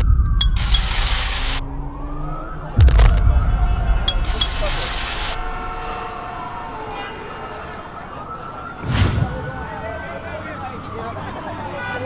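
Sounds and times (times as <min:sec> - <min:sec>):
siren wailing: 0:00.0 - 0:12.0.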